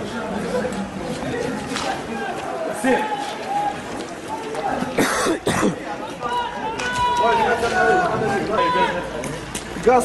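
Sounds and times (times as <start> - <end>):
people talking and shouting: 0.0 - 10.0
harsh cough-like burst: 5.0 - 5.8.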